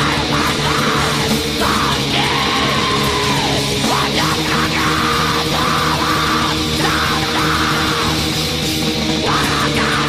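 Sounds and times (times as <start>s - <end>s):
distorted guitars and drums: 0.0s - 10.0s
harsh screamed vocal: 0.0s - 10.0s.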